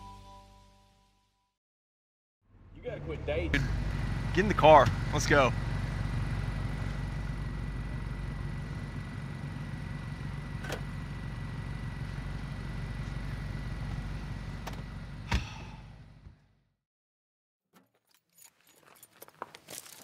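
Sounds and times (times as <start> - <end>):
car engine idling: 2.5 - 16.6.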